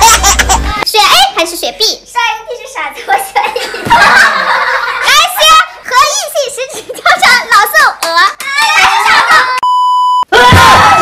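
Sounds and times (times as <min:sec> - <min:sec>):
people talking and laughing: 0:02.7 - 0:07.8, 0:08.5 - 0:09.8
electronic beep: 0:09.6 - 0:10.3.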